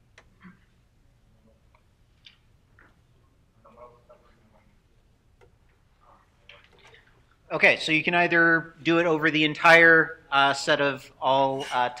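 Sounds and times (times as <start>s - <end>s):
faint low hum: 0.0s - 11.9s.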